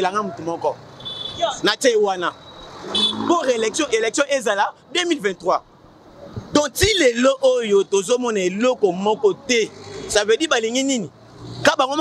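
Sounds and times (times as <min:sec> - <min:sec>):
man speaking: 0:00.0 - 0:00.8, 0:01.4 - 0:02.4, 0:03.0 - 0:05.6, 0:06.6 - 0:12.0
street noise: 0:00.0 - 0:12.0.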